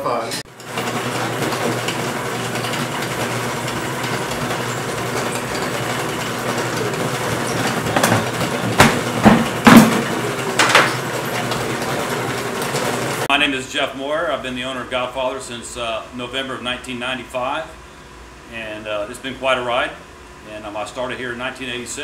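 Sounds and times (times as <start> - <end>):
dough sheeter motor droning: 0.0 - 22.0
pans knocking on steel counter: 7.8 - 11.0.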